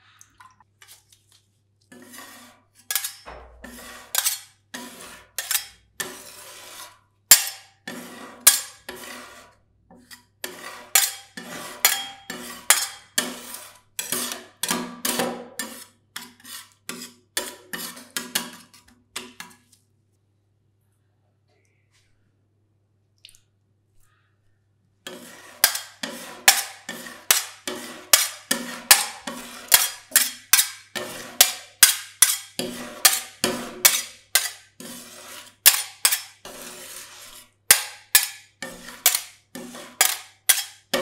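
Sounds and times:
metal spatulas clacking and scraping: 0:01.9 - 0:09.1, 0:10.0 - 0:19.6, 0:25.1 - 0:41.0.

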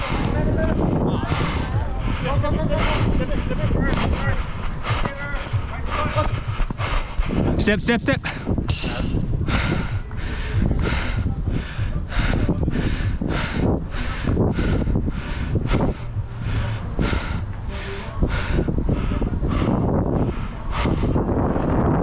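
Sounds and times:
running footsteps on turf: 0:00.0 - 0:08.6
wind rumbling on microphone: 0:00.0 - 0:22.0.

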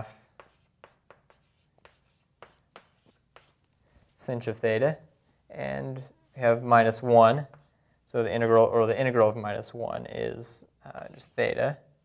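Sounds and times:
writing strokes on paper: 0:00.2 - 0:03.7.

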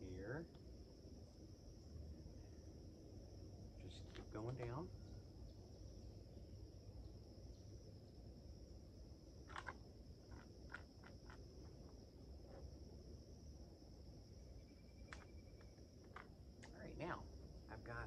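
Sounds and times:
insects droning: 0:00.0 - 0:18.0.

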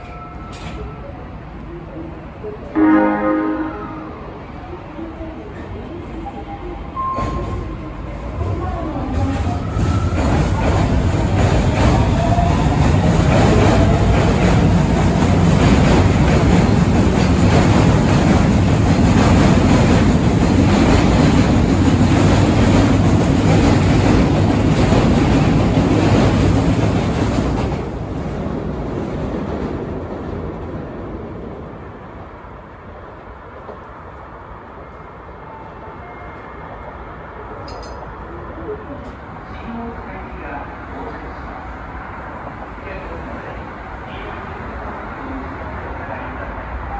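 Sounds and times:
distant train on elevated track: 0:00.0 - 0:46.9
subway train running past: 0:00.0 - 0:46.9.

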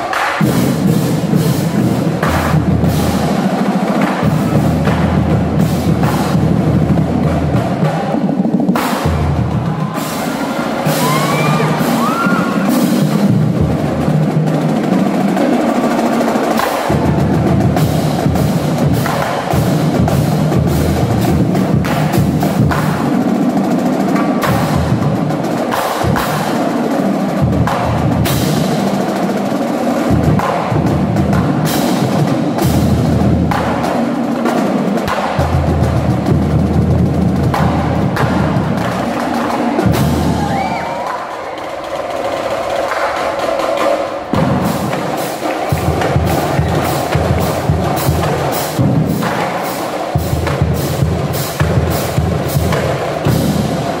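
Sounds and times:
snare drums: 0:00.0 - 0:54.0
tenor drums: 0:00.0 - 0:54.0
bass drums: 0:35.0 - 0:41.0, 0:44.3 - 0:54.0.

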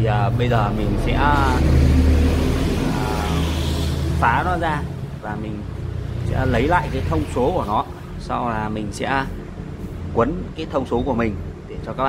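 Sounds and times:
engine rumbling: 0:00.0 - 0:12.0.

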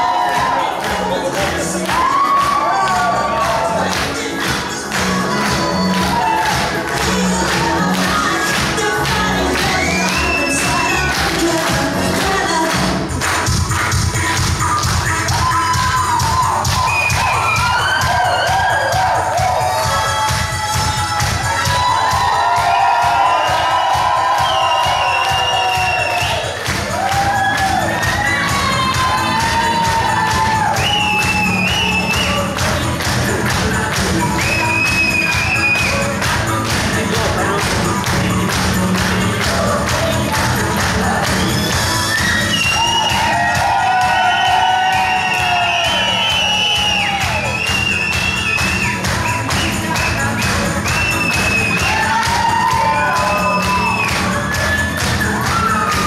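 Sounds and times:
crowd clapping and cheering: 0:00.0 - 0:56.0
loud dance music: 0:00.0 - 0:56.0.

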